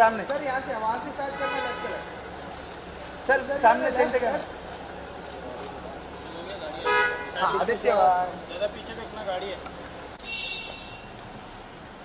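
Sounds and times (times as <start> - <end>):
low background murmur: 0.0 - 10.2
car horn toot: 6.8 - 7.4, 10.2 - 11.1.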